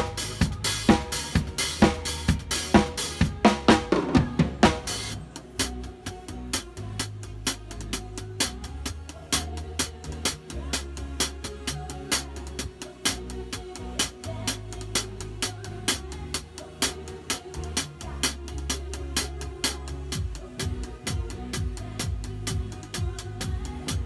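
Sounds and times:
bass line: 0.0s - 24.0s
drum kit beat: 0.0s - 24.0s.

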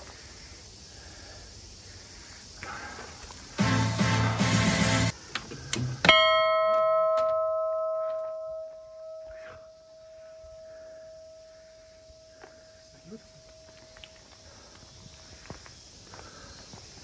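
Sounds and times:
bronze bell ringing: 6.1s - 12.4s.

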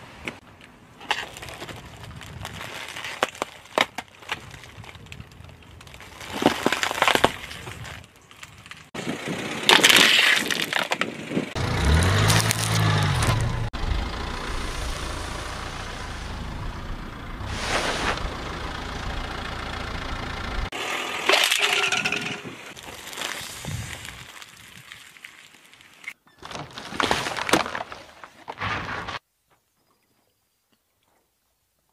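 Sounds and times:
wrappers crunching under car tyre: 1.0s - 13.7s, 22.7s - 29.2s
car engine running: 11.6s - 20.7s.

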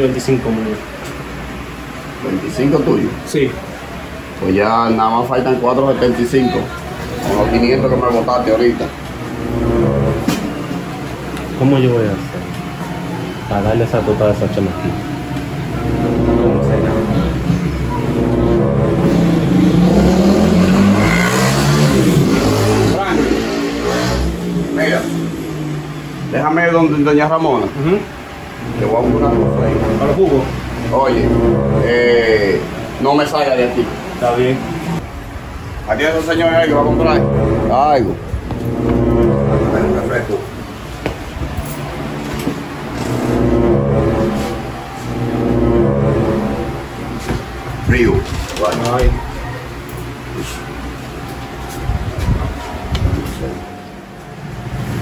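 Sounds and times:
vehicle engine revving: 6.6s - 13.5s, 14.3s - 51.8s.

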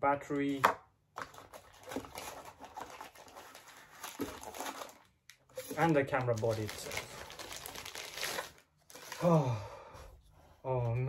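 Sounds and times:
packaging rustling: 1.2s - 9.2s.

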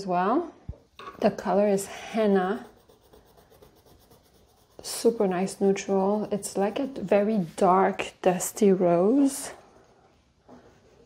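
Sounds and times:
pencil scratching on paper: 1.5s - 11.0s.

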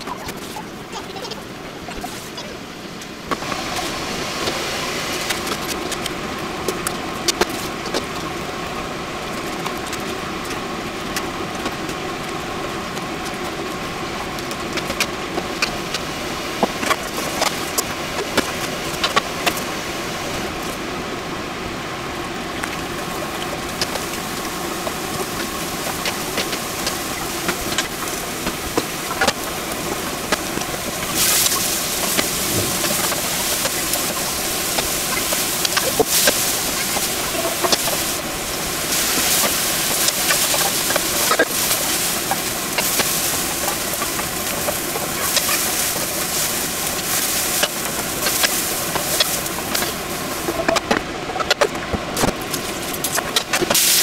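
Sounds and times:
vegetables frying in a hot pan: 3.2s - 20.8s, 22.6s - 50.9s, 52.2s - 54.0s.

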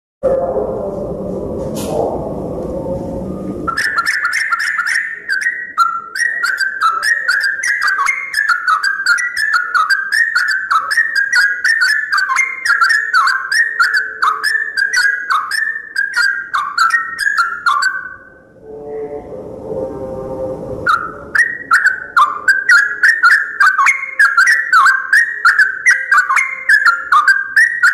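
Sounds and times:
bird singing fast notes: 3.7s - 19.3s, 20.9s - 27.9s.

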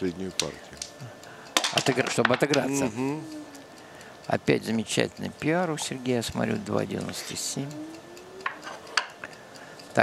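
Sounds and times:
game pieces and dice clicking: 8.4s - 9.3s.

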